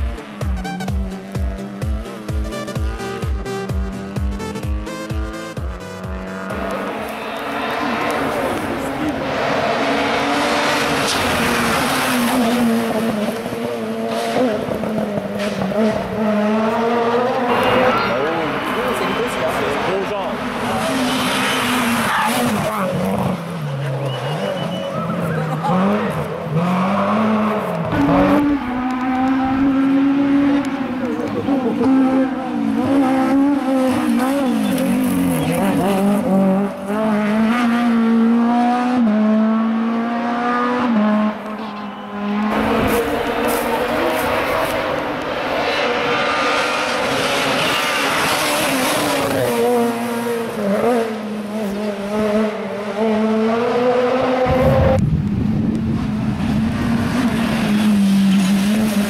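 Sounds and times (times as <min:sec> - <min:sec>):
rally car engines revving: 0:00.0 - 0:59.0
tyre noise on road: 0:00.0 - 0:59.0.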